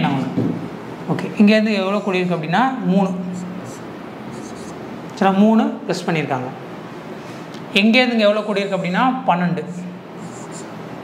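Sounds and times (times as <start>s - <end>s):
marker pen writing on whiteboard: 1.8s - 4.8s, 10.2s - 10.7s.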